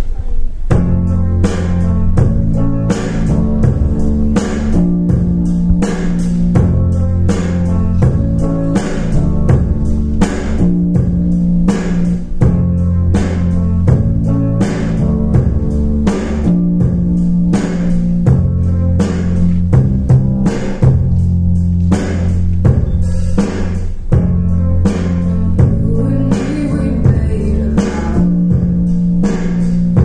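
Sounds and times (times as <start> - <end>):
instrumental pop ballad over speakers: 0.0 - 30.0.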